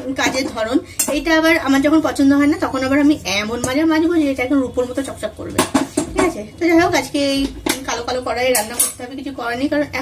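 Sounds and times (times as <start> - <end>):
woman talking: 0.0 - 10.0
metal cookware clinking: 7.1 - 9.2.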